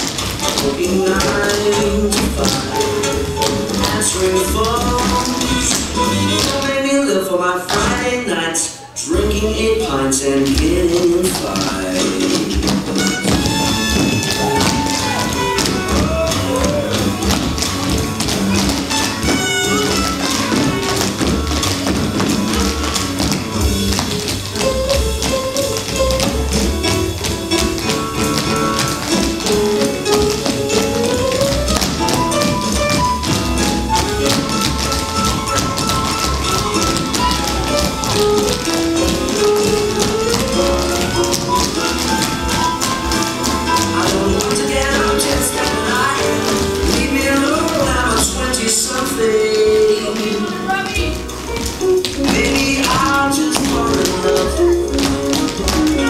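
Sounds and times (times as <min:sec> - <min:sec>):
instrumental jazz-pop music: 0:00.0 - 0:08.3, 0:09.0 - 0:56.0
tap shoes striking stage floor: 0:00.0 - 0:08.3, 0:09.1 - 0:56.0.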